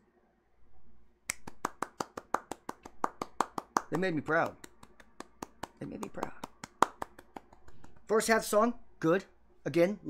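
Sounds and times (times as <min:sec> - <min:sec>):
rapid sharp hand clicks: 0:01.3 - 0:08.4.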